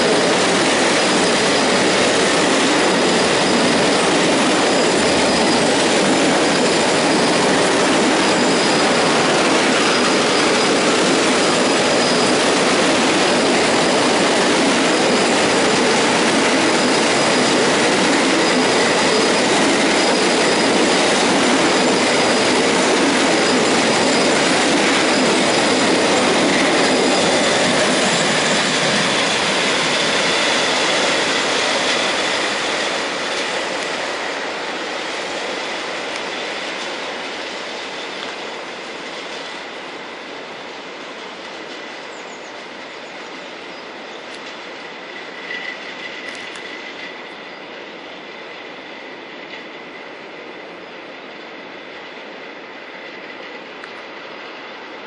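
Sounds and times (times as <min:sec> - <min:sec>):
high wheel squeal: 0:00.0 - 0:39.7, 0:41.3 - 0:49.1
freight train rolling on rails: 0:00.0 - 0:55.0.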